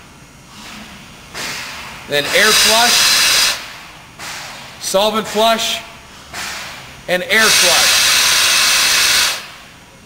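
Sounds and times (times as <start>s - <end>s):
hiss of pressurised flow: 1.4s - 4.6s, 6.4s - 9.6s.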